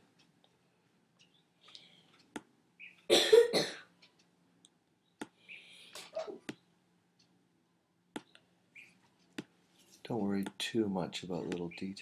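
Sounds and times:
person coughing: 0:03.1 - 0:03.9.

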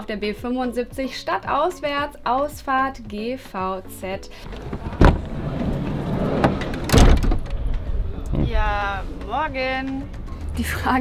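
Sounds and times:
sliding door rumbling on track: 0:04.4 - 0:08.5
door latch clack: 0:06.3 - 0:07.8.

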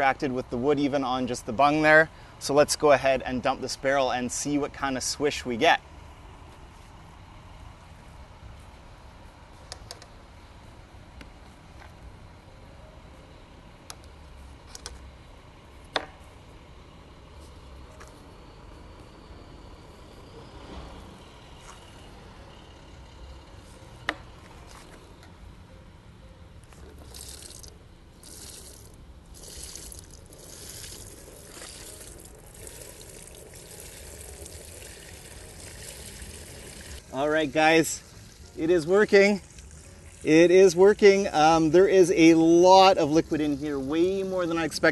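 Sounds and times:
liquid splashing through a metal sieve: 0:27.0 - 0:37.0.

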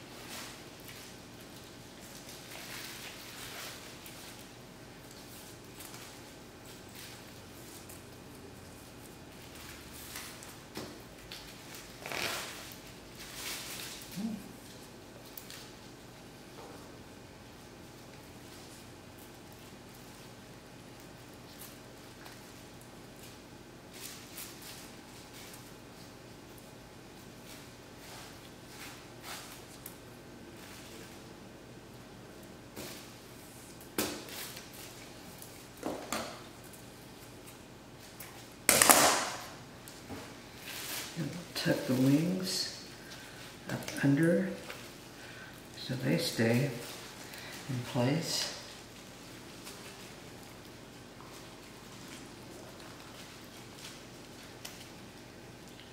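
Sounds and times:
plastic sheet crinkling: 0:00.0 - 0:16.2, 0:17.8 - 0:55.9
plastic wrap rustling: 0:00.0 - 0:55.9.

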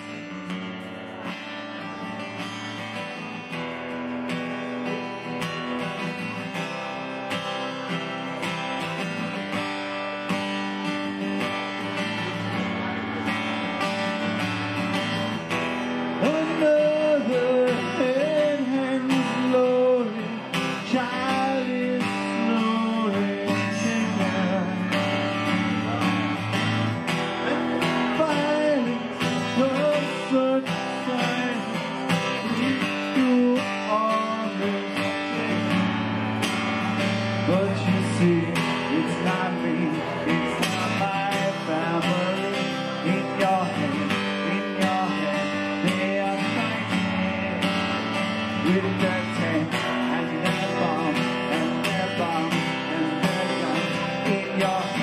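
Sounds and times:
acoustic guitar strumming: 0:00.0 - 0:55.0
man singing: 0:04.6 - 0:55.0.

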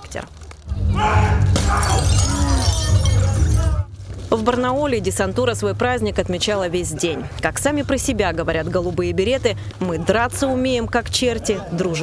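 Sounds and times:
people shouting: 0:00.8 - 0:03.9
bricks being smashed: 0:01.5 - 0:04.3.

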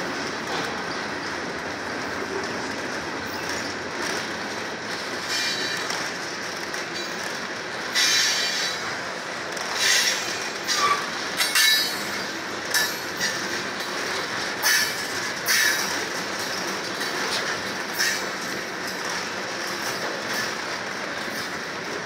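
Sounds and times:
train wheels rumbling on rail: 0:00.0 - 0:22.0
wheels clacking over rail joints: 0:00.0 - 0:22.0.

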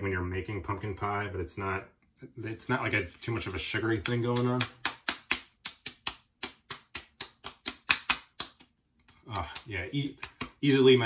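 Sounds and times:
palms patting skin: 0:03.8 - 0:11.0.

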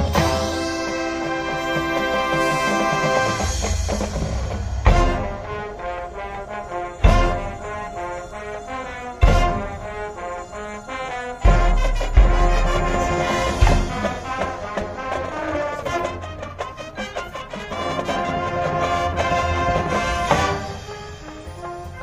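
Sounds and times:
marching band brass chords: 0:00.0 - 0:22.0
loud low drum hits: 0:03.0 - 0:05.5, 0:11.5 - 0:14.9.

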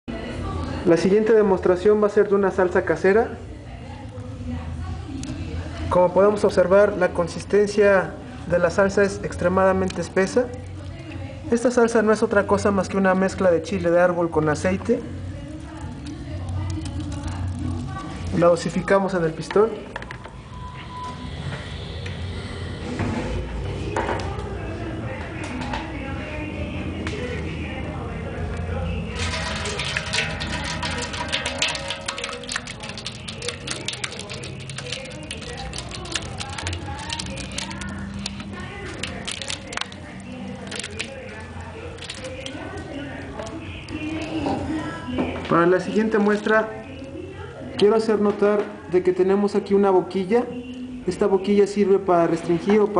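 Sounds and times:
steady low hum: 0:20.2 - 0:45.1.

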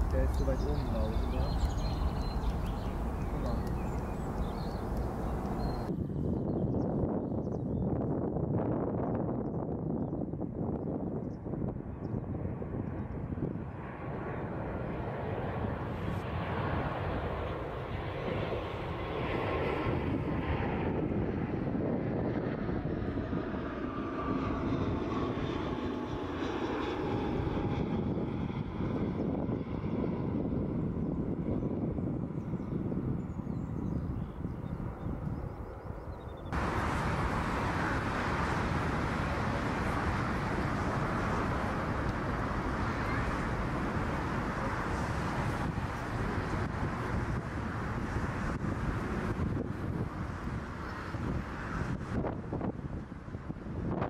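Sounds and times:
distant jet engines overhead: 0:00.0 - 0:54.0.

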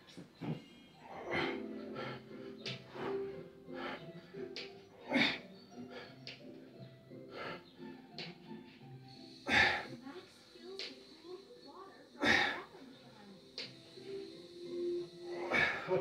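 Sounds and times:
children's music from tv: 0:00.0 - 0:16.0
man breathing hard: 0:01.1 - 0:06.2, 0:15.0 - 0:16.0.

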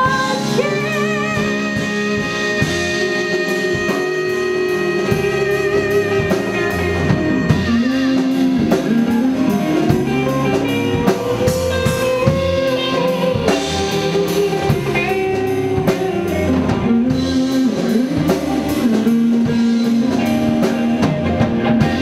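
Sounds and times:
drum kit with cymbal strikes: 0:00.0 - 0:22.0
electric bass: 0:00.0 - 0:22.0
electric guitar long held notes: 0:00.0 - 0:22.0
keyboard: 0:00.0 - 0:22.0.

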